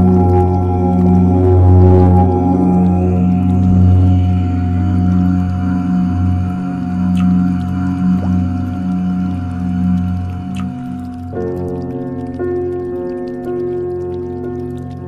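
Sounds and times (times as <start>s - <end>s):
deep voice chanting: 0.0s - 10.6s
ambient meditation music: 0.0s - 15.0s
faint clicks: 8.6s - 15.0s.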